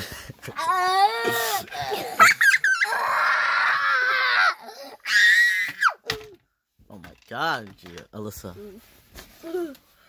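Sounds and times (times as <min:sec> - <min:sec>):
child screaming: 0:00.6 - 0:06.0.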